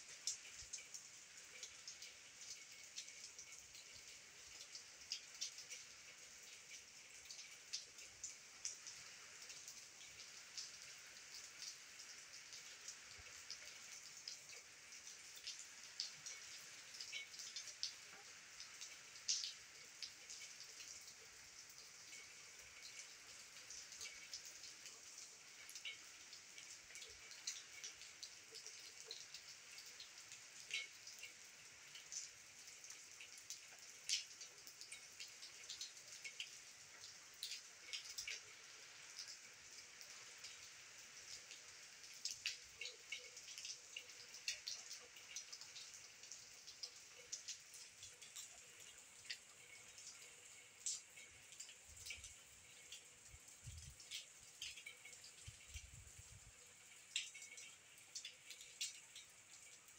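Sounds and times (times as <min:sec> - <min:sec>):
light rain hiss: 0:00.0 - 0:59.9
raindrops ticking: 0:00.2 - 0:59.9.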